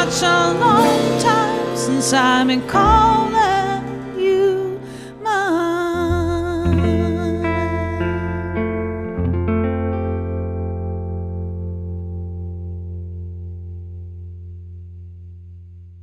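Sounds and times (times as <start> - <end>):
country guitar chord ringing: 0.0 - 15.1.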